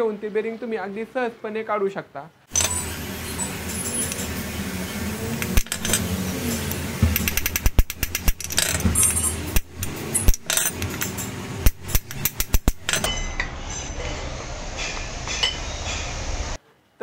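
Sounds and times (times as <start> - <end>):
hammer striking steel rod: 5.4 - 14.2, 14.8 - 16.1.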